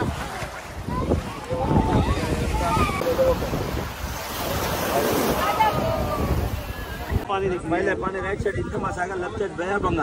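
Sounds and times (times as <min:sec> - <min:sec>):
sea waves breaking on shore: 0:00.0 - 0:07.3
wind buffeting microphone: 0:00.0 - 0:10.0.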